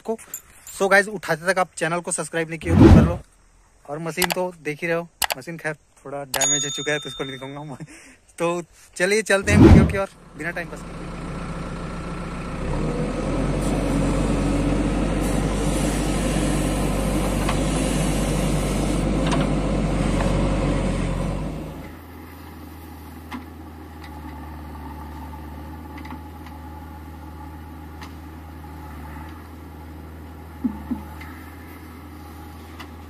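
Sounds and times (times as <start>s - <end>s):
diesel engine of digger: 9.4s - 33.0s.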